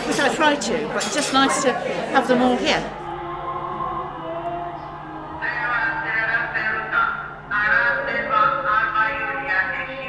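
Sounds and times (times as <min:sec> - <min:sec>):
loudspeaker announcement voice: 0:04.3 - 0:10.0.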